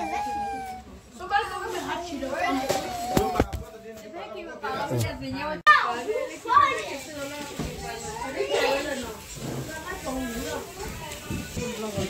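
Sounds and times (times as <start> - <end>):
children chattering and shouting: 0.0 - 12.0.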